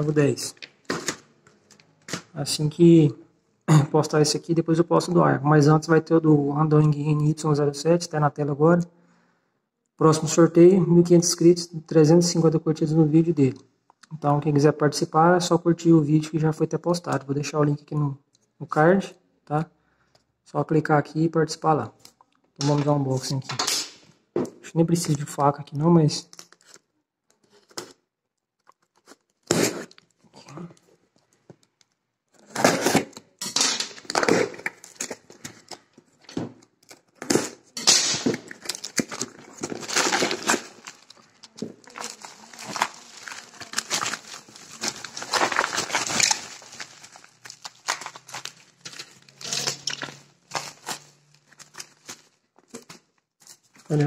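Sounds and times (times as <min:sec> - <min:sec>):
plastic and bubble wrap crinkling: 0:00.0 - 0:02.3, 0:33.8 - 0:54.0
packing tape pulled from box: 0:28.8 - 0:30.1, 0:32.4 - 0:33.2, 0:36.8 - 0:52.3.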